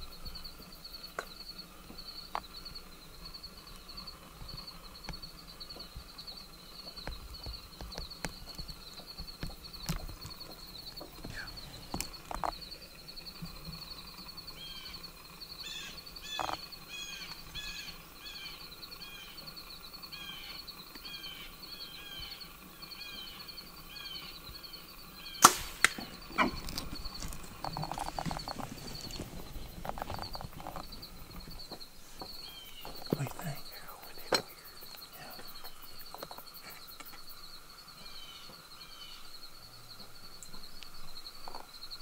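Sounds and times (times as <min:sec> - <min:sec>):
bird chirping: 0:00.0 - 0:39.6
high insect drone: 0:00.0 - 0:42.0
bow shot crack: 0:25.3 - 0:27.9
rustling: 0:25.4 - 0:36.9.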